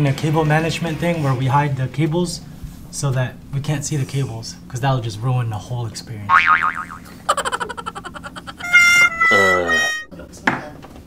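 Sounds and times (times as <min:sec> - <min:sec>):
springy wobble: 0:06.3 - 0:10.1
cry falling in pitch: 0:06.7 - 0:10.1.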